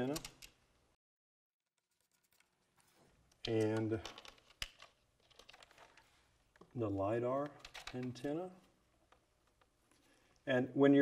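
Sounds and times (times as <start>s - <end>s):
cable connectors clicking: 3.2s - 10.4s.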